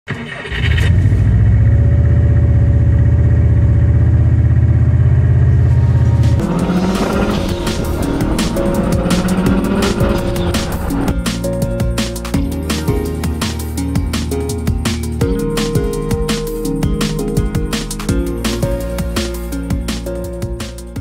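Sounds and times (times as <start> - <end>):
car engine droning: 0.4 - 12.1
music with driving drum beat: 6.1 - 21.0.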